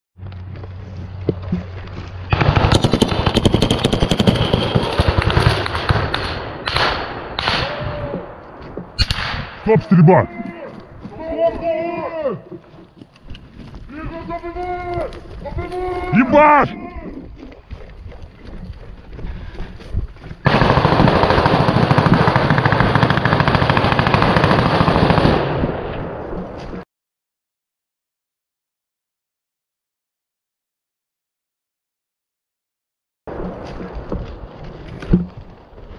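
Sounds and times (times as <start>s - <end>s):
heavy automatic gunfire: 2.3s - 7.8s, 20.4s - 25.8s
machine gun firing: 2.3s - 7.8s, 20.4s - 25.8s.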